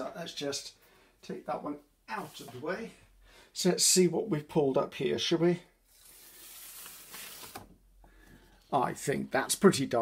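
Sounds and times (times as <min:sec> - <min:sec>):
paper peeling off printing plate: 0:05.9 - 0:07.7.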